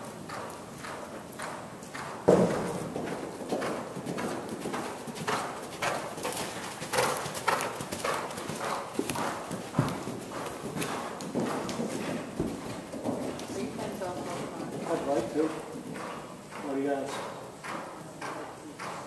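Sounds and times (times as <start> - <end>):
horse hoofbeats cantering: 0.0 - 19.0.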